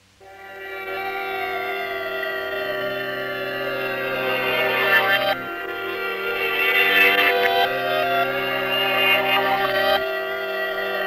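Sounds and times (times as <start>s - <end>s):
sustained chord of held tones: 0.2s - 11.0s.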